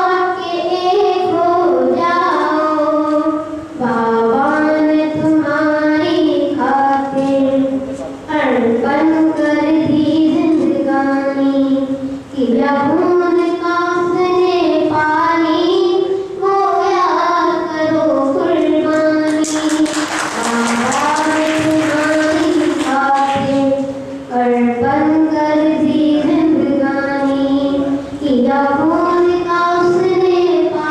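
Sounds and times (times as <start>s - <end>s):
boy singing into a microphone: 0.0s - 30.9s.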